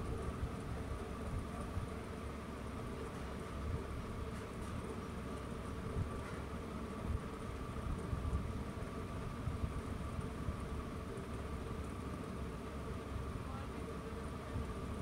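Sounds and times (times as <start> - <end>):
background hum and hiss: 0.0 - 15.0.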